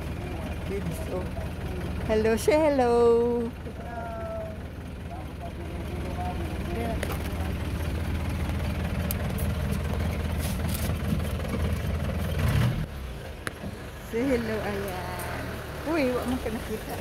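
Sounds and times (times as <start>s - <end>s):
jeep engine and road rumble: 0.0s - 17.0s.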